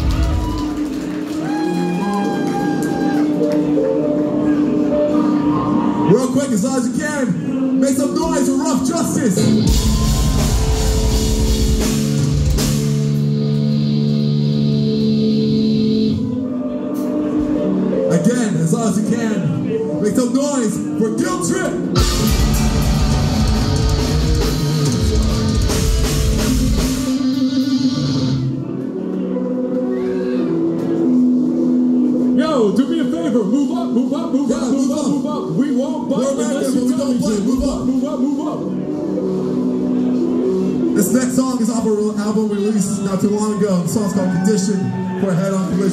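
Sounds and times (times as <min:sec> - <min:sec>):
rock band playing live: 0:09.3 - 0:16.3, 0:21.8 - 0:28.6.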